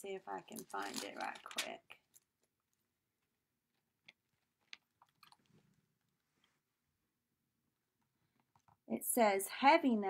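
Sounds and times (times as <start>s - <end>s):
faint clicks and taps: 8.0s - 8.9s.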